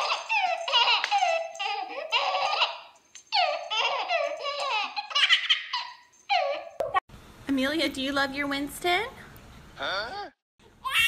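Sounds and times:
baby giggling: 0.0 - 7.0.

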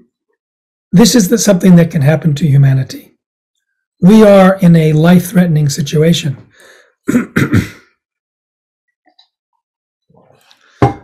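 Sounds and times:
man clearing his throat: 7.1 - 8.0.

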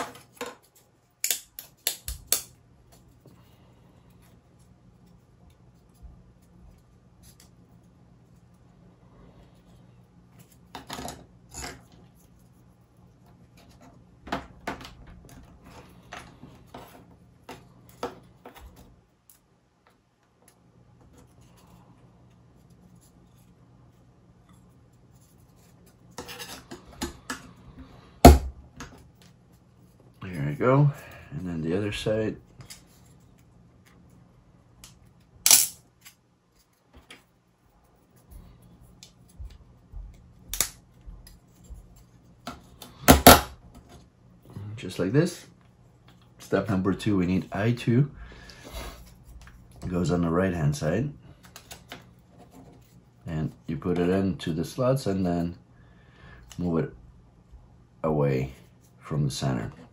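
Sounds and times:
faint low hum: 0.0 - 59.9.

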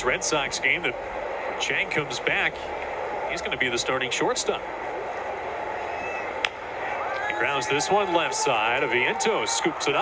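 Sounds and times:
ballpark crowd noise: 0.0 - 10.0.

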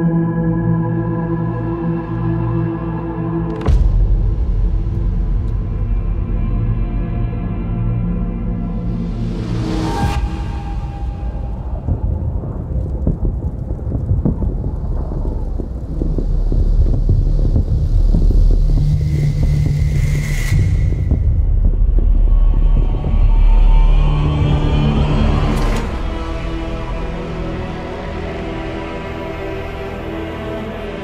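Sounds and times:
deep rumble: 0.4 - 31.0
dense crackling: 10.6 - 19.9.

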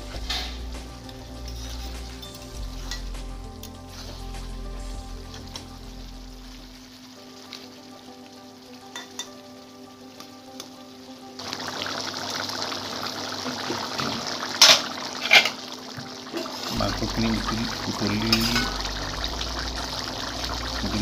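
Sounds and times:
curry bubbling and sizzling: 0.0 - 21.0.

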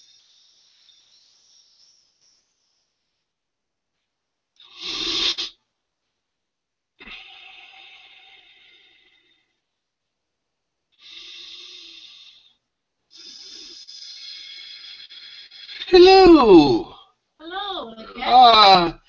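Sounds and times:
deep breaths: 7.0 - 9.9, 10.9 - 17.3
person moaning: 15.9 - 17.0, 17.7 - 19.0.

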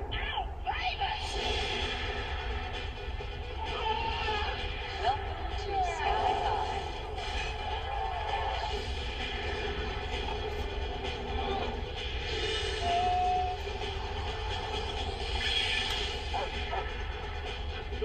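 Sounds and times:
background music from tv speakers: 0.0 - 18.0.

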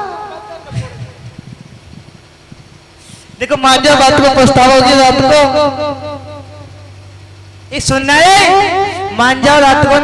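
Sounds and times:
faint low rumbling: 0.0 - 10.0.

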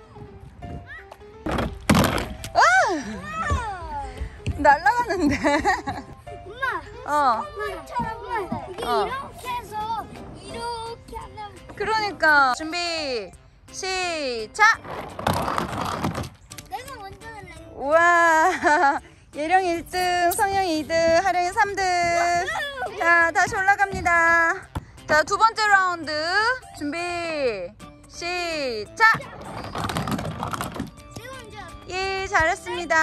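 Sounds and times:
child's voice: 0.9 - 1.1, 6.4 - 11.7, 16.7 - 17.8, 22.4 - 23.0, 31.1 - 31.9.

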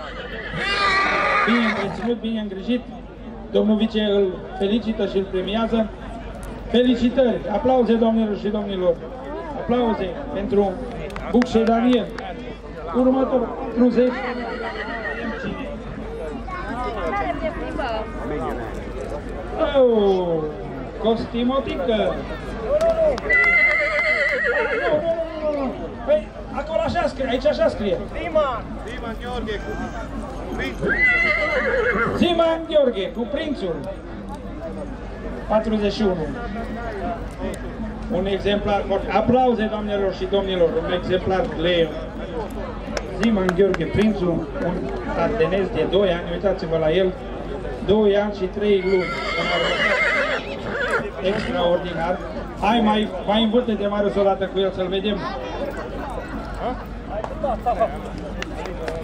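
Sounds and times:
horse whinnying: 0.0 - 2.1, 14.2 - 15.5, 23.3 - 25.1, 30.8 - 32.2, 48.8 - 51.6.

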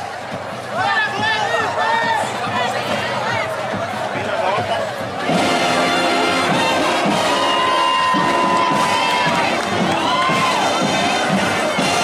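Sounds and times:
crowd cheering: 0.0 - 12.0
children shouting: 7.1 - 12.0.

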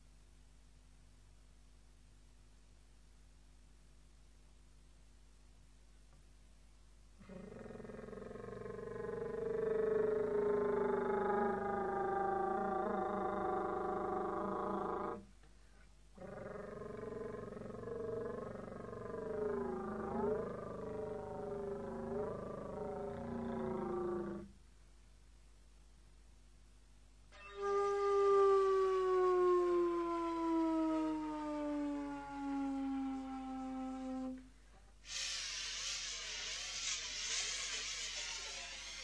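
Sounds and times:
slide flute long rough tones: 27.3 - 34.4.

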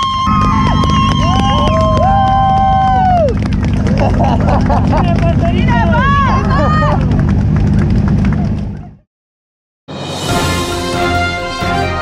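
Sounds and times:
crowd clapping: 0.0 - 9.1
low rumble: 0.0 - 9.1.

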